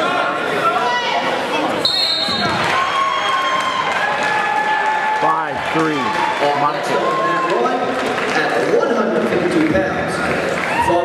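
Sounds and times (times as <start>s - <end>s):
coaches and spectators yelling: 0.0s - 8.5s, 10.1s - 11.0s.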